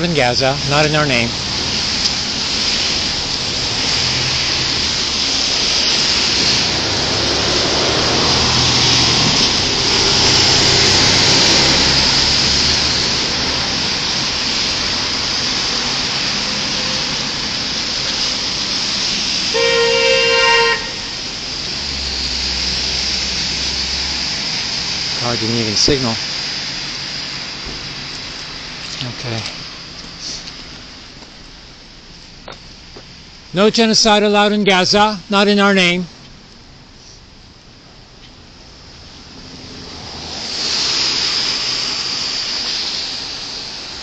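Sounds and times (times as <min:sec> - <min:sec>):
road traffic passing: 0:00.0 - 0:44.0
car horn honk: 0:16.4 - 0:17.4, 0:19.5 - 0:21.2.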